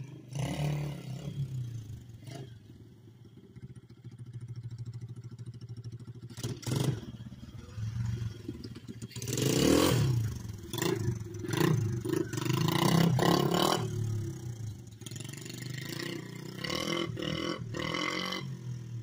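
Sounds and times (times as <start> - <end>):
mini bike engine revving: 0.0 - 2.5, 6.2 - 19.0.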